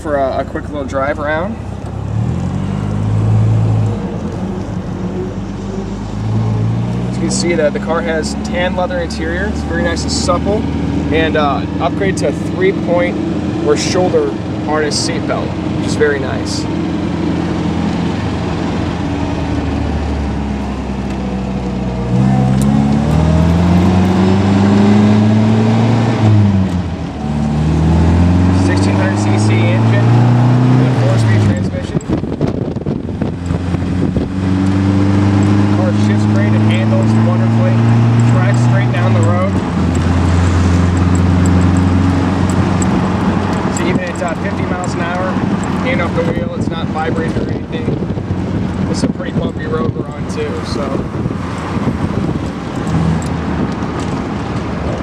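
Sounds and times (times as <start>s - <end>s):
car engine accelerating through gears: 0.7s - 55.0s.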